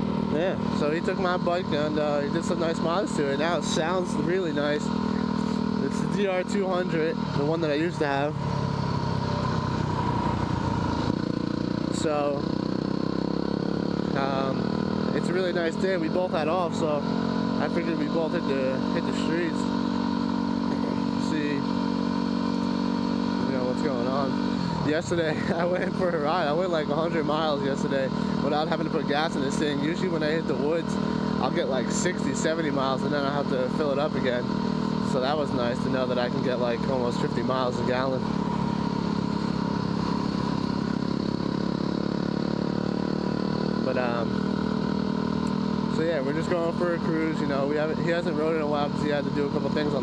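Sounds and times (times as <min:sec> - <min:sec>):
motorcycle engine cruising: 0:00.0 - 0:50.0.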